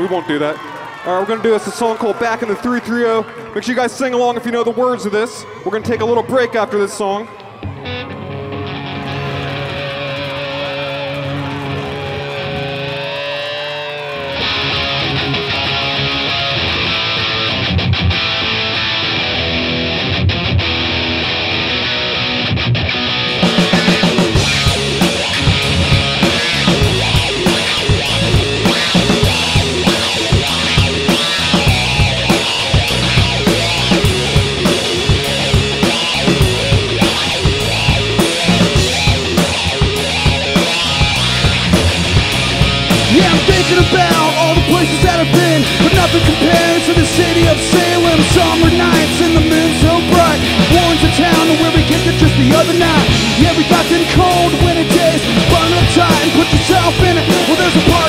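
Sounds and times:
electric guitars: 7.2s - 58.0s
drums steady beat: 23.4s - 58.0s.

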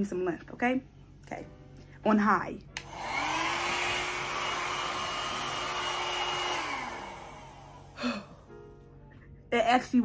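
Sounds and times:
hair dryer running: 2.8s - 8.4s.

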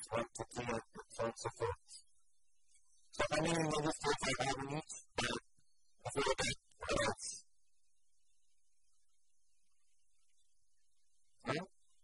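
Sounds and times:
man lecturing: 0.0s - 2.0s, 3.2s - 5.4s, 6.1s - 7.4s.

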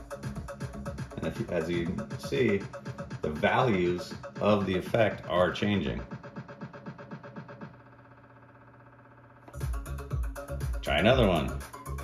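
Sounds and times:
electronic dance music with bass: 0.0s - 7.8s, 9.5s - 12.0s
electronic dance music stuttering: 0.0s - 12.0s.

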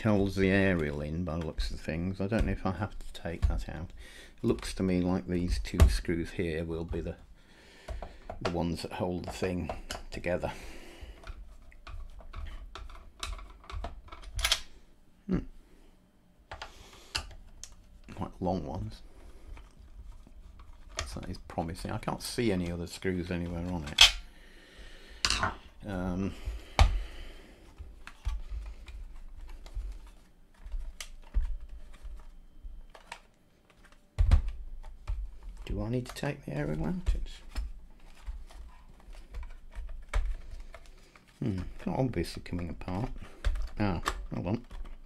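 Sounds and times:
plastic radio case handled: 27.6s - 45.0s.

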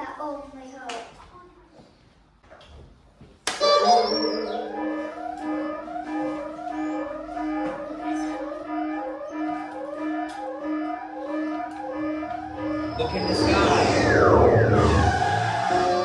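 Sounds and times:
warbling electronic sweeps: 3.9s - 9.6s, 10.6s - 16.0s
pulsing low electronic tone: 4.2s - 16.0s.

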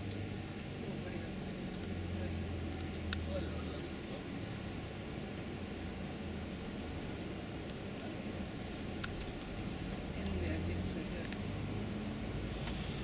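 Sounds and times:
coach engine drone: 0.0s - 13.0s
road noise: 0.0s - 13.0s.

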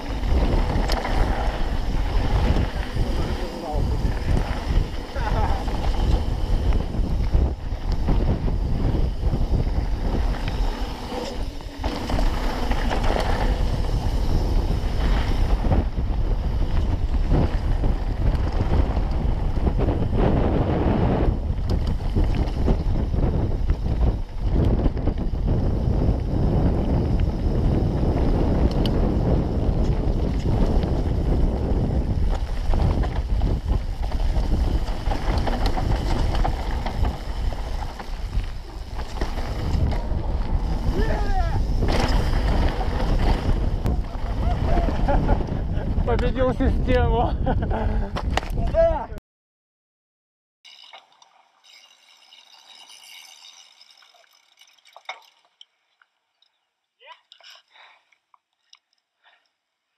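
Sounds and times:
bike tyres rolling over stones: 0.0s - 48.8s, 50.7s - 55.6s
wind buffeting microphone: 0.0s - 49.2s.

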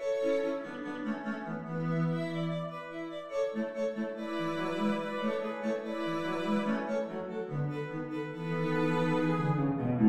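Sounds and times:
string quartet playing softly: 0.0s - 10.0s.

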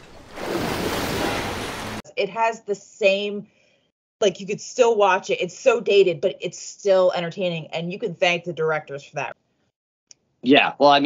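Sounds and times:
sea water washing: 0.0s - 2.0s.

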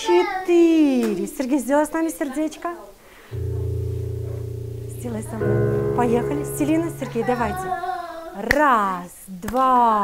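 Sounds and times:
piano chord ringing: 3.4s - 8.3s.

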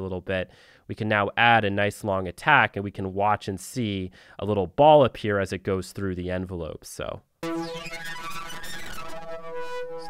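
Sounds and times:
held synthesizer note: 7.4s - 10.0s.

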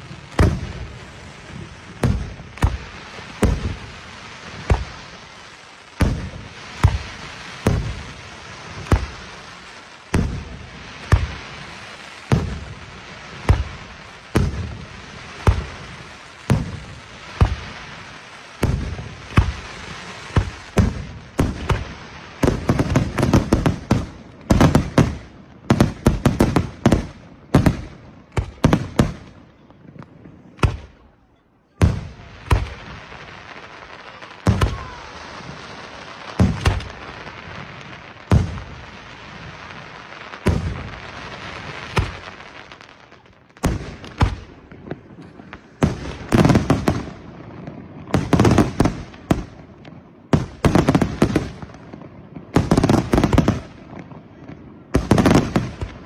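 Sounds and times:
firework shells bursting: 36.4s - 37.0s.

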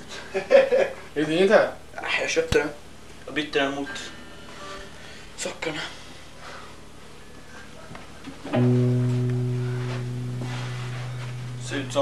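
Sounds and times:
faint room noise: 0.0s - 12.0s
electric guitar low note ringing: 8.5s - 12.0s.

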